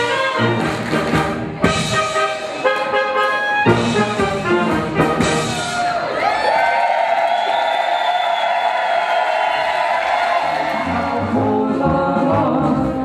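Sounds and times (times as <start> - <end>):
brass band folk dance music: 0.0 - 6.0, 10.4 - 13.0.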